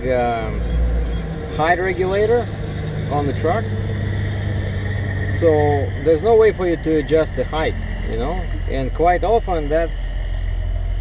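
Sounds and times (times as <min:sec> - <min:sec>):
man talking: 0:00.0 - 0:00.6, 0:01.5 - 0:02.5, 0:03.1 - 0:03.7, 0:05.3 - 0:10.2
diesel truck engine idling: 0:00.0 - 0:11.0.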